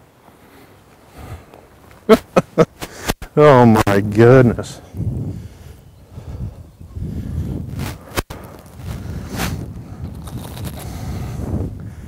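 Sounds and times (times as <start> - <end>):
footsteps in dry grass: 7.6 - 11.4.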